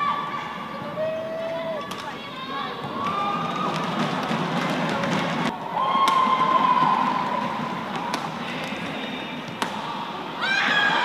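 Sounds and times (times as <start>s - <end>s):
arena crowd noise: 0.0s - 11.0s
crowd shouting and cheering: 0.0s - 11.0s
racket striking shuttlecock: 7.9s - 8.8s, 9.5s - 10.0s.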